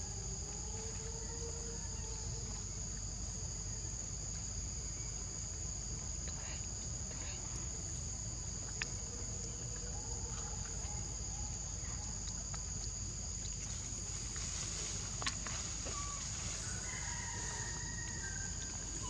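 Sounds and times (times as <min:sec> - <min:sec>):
high-pitched insect chorus: 0:00.0 - 0:19.0.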